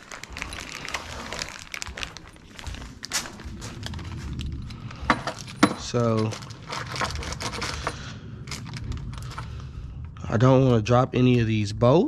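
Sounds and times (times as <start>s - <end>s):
plastic bag crinkling: 0.0s - 9.8s
bolts clinking in plastic bag: 5.1s - 9.4s.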